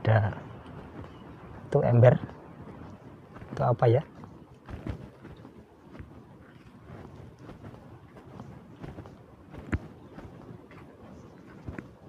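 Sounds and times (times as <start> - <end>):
footsteps on dry leaves: 0.7 - 12.0.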